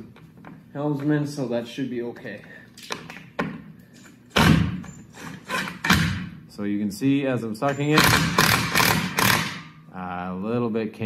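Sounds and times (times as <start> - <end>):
impact wrench hammering a nut: 4.3 - 6.4, 7.6 - 9.8.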